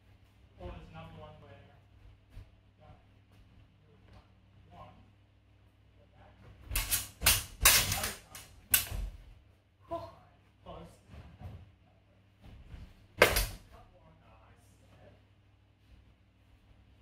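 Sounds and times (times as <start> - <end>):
training swords clacking: 6.7 - 9.0, 13.2 - 13.6.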